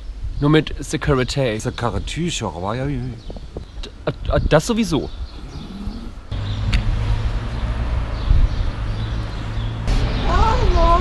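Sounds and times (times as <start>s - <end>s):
vehicle engine rumble: 3.0s - 11.0s.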